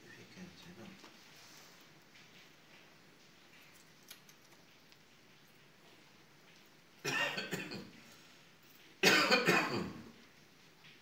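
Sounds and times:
person coughing: 0:07.1 - 0:07.9, 0:09.0 - 0:10.0.

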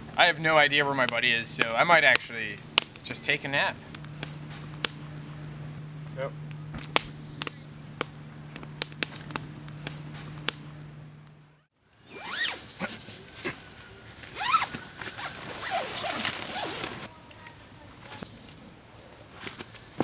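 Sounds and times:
wood fire crackling and popping: 0:00.0 - 0:11.7
low steady hum: 0:00.0 - 0:20.0
tent zipper pulled: 0:12.1 - 0:12.6, 0:14.4 - 0:17.1.

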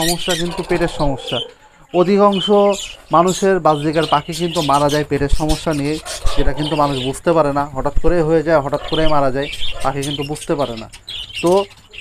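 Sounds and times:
budgerigars chirping: 0:00.0 - 0:12.0.

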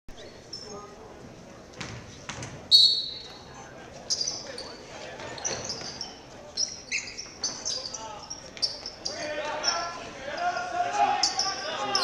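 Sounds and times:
sneakers squeaking on gym floor: 0:00.1 - 0:00.9, 0:01.8 - 0:12.0
basketball bouncing: 0:01.8 - 0:02.6
voices: 0:03.1 - 0:12.0.

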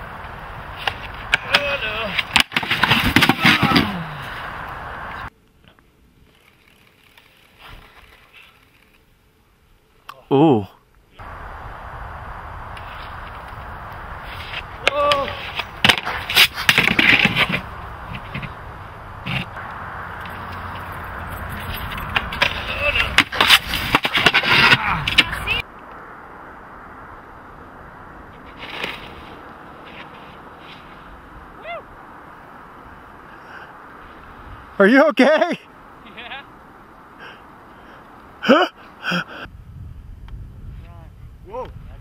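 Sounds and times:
wind and snow rushing: 0:00.0 - 0:05.3, 0:11.2 - 0:42.0
people shouting: 0:14.8 - 0:15.5, 0:31.6 - 0:31.9.

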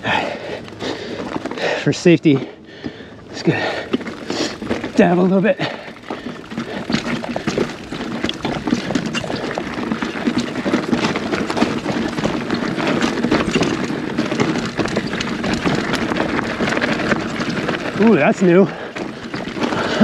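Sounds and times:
tyres crunching over gravel: 0:00.0 - 0:20.0
bike rattling clicks: 0:00.2 - 0:20.0.

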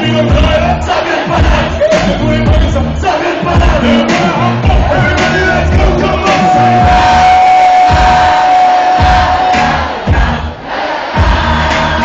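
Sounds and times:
live rap music over speakers: 0:00.0 - 0:12.0
crowd shouting along: 0:03.0 - 0:12.0.

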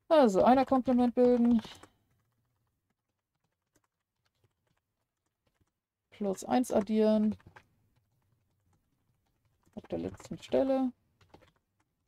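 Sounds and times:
faint keyboard typing: 0:00.1 - 0:12.0.

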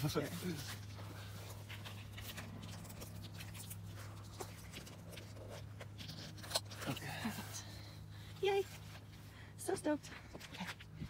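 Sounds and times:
soft rustling: 0:00.0 - 0:11.0
steady low hum: 0:00.0 - 0:11.0.

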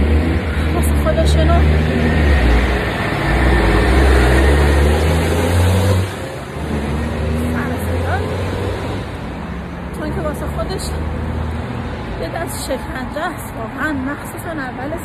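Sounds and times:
heavy vehicle engine rumble: 0:00.0 - 0:15.0.

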